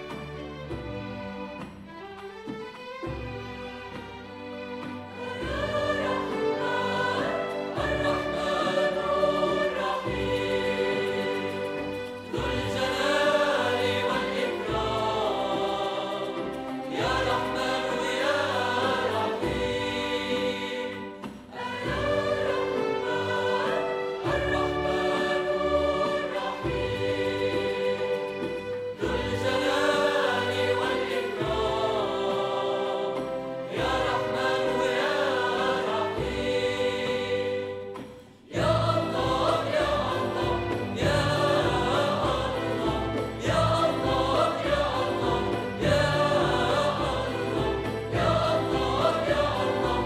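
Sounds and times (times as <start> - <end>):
choir singing with orchestra: 0.0 - 50.0
frame drums beating: 0.0 - 50.0.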